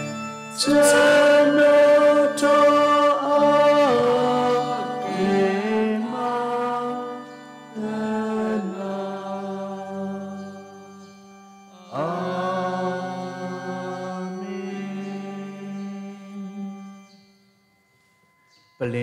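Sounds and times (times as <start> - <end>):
sung prayer chant: 0.0 - 11.0, 11.7 - 17.2.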